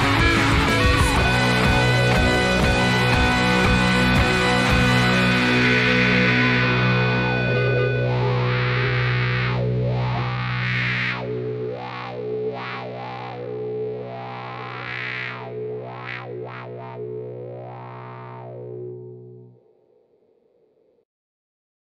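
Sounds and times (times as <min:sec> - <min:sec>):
distorted electric guitar with wah: 0:00.0 - 0:20.0.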